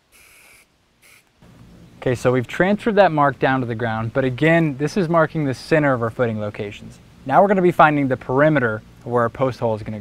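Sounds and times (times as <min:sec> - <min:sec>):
spray paint can hissing: 0:00.0 - 0:01.3.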